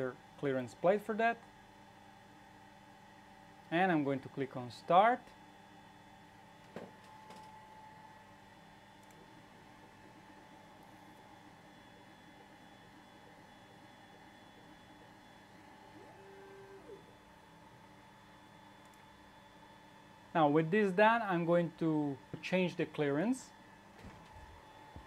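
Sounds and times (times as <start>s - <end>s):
faint steady hum: 0.0s - 25.0s.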